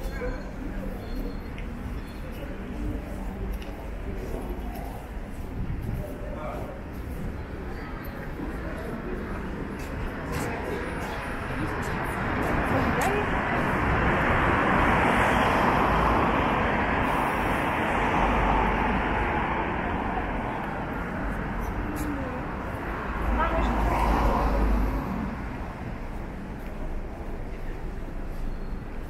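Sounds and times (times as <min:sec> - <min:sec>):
passers-by talking indistinctly: 0:00.0 - 0:29.0
road traffic passing: 0:00.0 - 0:29.0.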